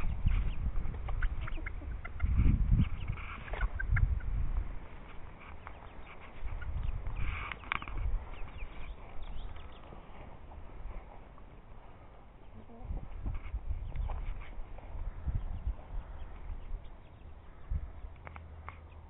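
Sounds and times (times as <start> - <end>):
chickens clucking: 0.0 - 19.0.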